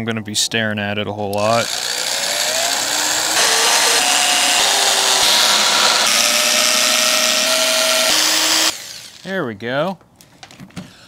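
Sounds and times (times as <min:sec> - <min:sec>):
cordless drill motor whine: 0:01.4 - 0:09.2.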